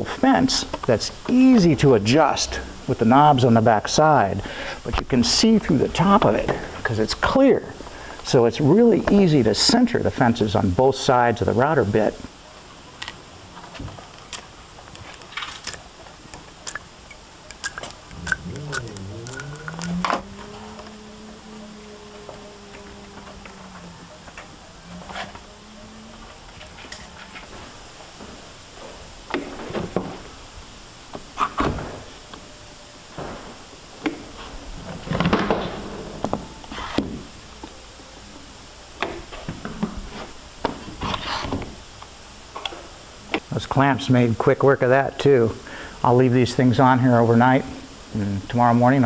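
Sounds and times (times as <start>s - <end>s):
steady low tone: 16.3s - 29.2s.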